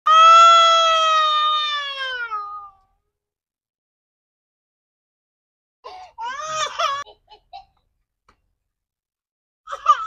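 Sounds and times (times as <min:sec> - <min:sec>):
toddler crying: 0:06.2 - 0:07.1.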